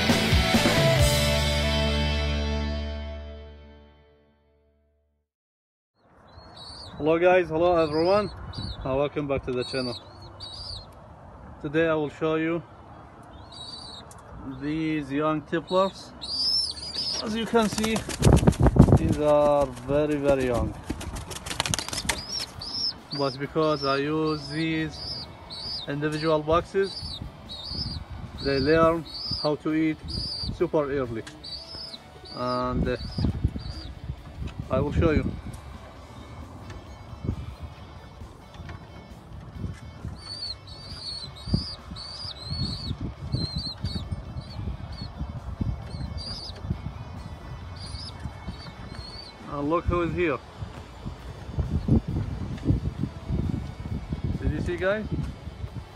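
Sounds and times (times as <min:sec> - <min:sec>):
birds peeping: 0:06.0 - 0:55.9
pigeon chirping: 0:06.2 - 0:11.1, 0:12.7 - 0:50.4
pigeon wing claps: 0:16.9 - 0:22.9.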